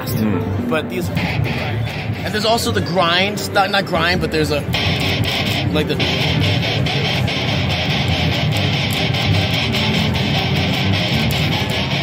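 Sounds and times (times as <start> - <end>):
distorted electric violin chopping: 0.0 - 12.0.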